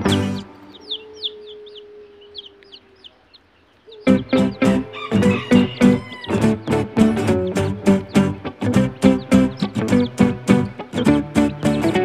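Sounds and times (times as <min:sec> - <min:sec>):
music: 0:00.0 - 0:01.0, 0:04.0 - 0:12.0
chicks peeping: 0:00.0 - 0:12.0.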